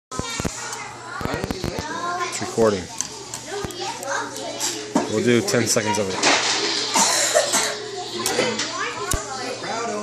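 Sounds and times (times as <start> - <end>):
children chattering: 0.1 - 10.0.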